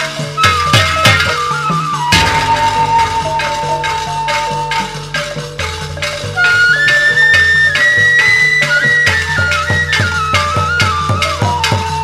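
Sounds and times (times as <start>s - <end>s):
high flute-like melody: 0.0s - 12.0s
percussion strokes: 0.0s - 12.0s.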